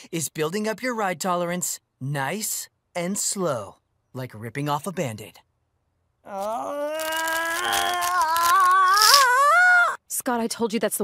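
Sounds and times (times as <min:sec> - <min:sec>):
man groaning in pain: 0:06.2 - 0:10.0.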